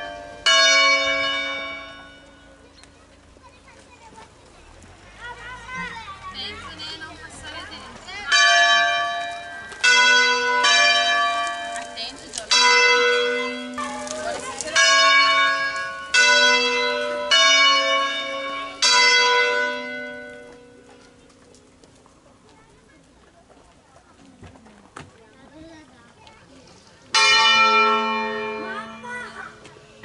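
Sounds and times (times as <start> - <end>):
church bells ringing: 0.0 - 2.7, 8.2 - 21.2, 27.1 - 29.6.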